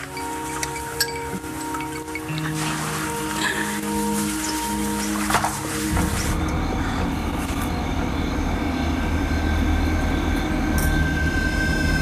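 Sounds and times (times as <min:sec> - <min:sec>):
faint sustained tones: 0:00.0 - 0:12.0
loud low rumble: 0:05.9 - 0:12.0.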